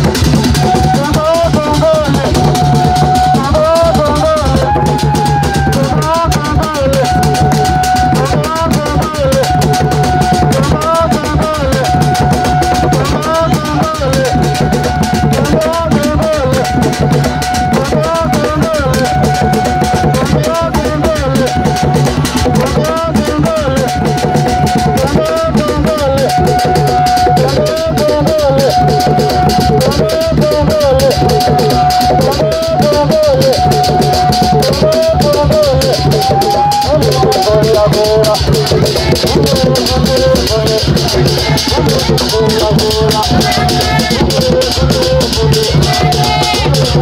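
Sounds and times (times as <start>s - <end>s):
dance music with drums: 0.0s - 47.0s.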